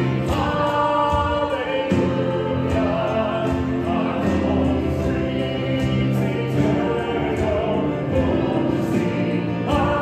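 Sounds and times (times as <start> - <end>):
voices singing a hymn: 0.0 - 10.0
worship band playing: 0.0 - 10.0.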